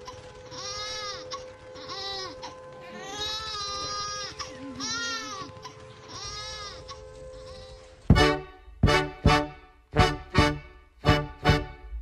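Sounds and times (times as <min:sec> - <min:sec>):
baby crying: 0:00.5 - 0:07.9
held musical note: 0:01.5 - 0:12.0
klezmer band chords: 0:08.1 - 0:12.0.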